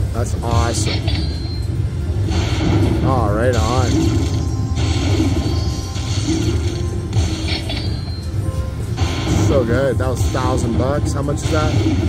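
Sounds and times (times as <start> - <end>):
low casino hum: 0.0 - 12.0
slot machine music and chimes: 0.0 - 12.0.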